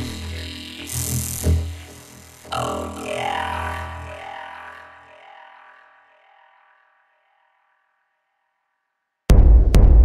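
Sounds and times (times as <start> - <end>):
sustained synthesizer: 0.0 - 7.1.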